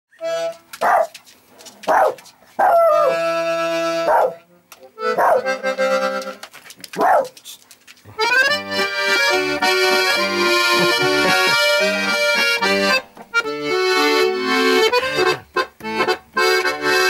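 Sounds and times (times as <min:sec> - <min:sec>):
bandoneon chords: 0:00.2 - 0:00.8, 0:02.8 - 0:06.5, 0:08.1 - 0:17.0.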